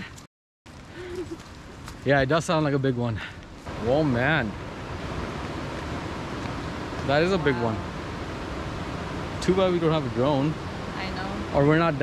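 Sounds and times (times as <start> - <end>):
waterfall rushing: 3.7 - 12.0.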